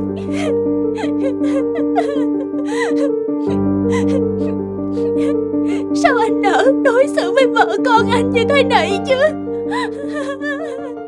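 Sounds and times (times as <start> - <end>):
soft music with held notes: 0.0 - 11.0
woman sobbing: 0.0 - 11.0.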